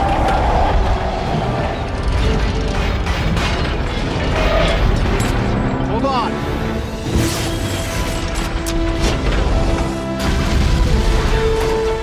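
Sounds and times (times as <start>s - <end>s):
heavy rumble: 0.0s - 5.6s
orchestral score: 0.0s - 12.0s.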